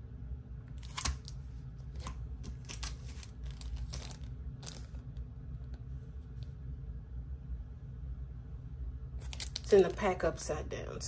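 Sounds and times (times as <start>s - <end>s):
plastic packaging crinkling: 0.8s - 5.0s, 9.2s - 10.0s.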